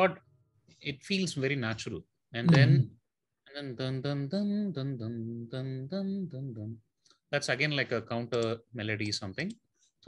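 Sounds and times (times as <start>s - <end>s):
man singing: 3.8s - 6.8s.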